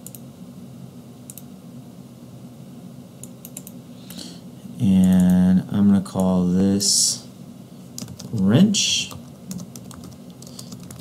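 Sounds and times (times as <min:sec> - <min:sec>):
computer mouse clicking: 0:00.0 - 0:00.2, 0:01.3 - 0:01.5, 0:03.2 - 0:04.2, 0:05.1 - 0:05.4, 0:08.0 - 0:08.4, 0:09.2 - 0:11.0
steady low hum: 0:00.0 - 0:11.0.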